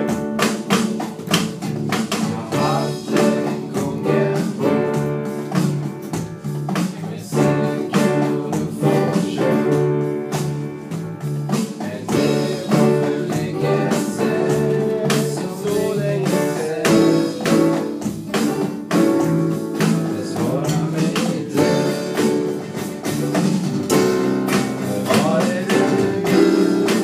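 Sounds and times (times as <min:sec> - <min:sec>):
sharp percussive beats: 0:00.0 - 0:27.0
strummed acoustic guitars: 0:00.0 - 0:27.0
person singing: 0:02.1 - 0:05.3, 0:06.9 - 0:10.2, 0:11.6 - 0:18.1, 0:19.8 - 0:22.8, 0:24.5 - 0:27.0.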